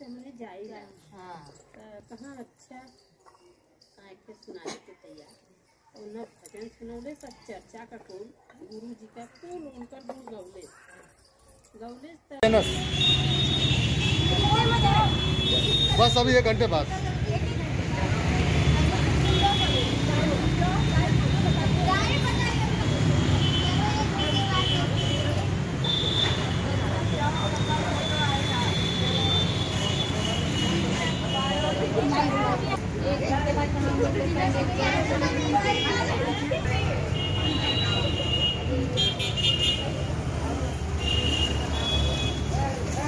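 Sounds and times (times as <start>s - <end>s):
people talking indistinctly: 0.0s - 43.0s
voices: 0.0s - 43.0s
low traffic rumble: 12.4s - 43.0s.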